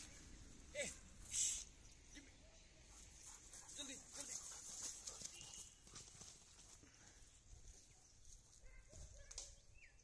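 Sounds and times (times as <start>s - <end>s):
rustling and snapping in dry grass: 7.7s - 9.8s.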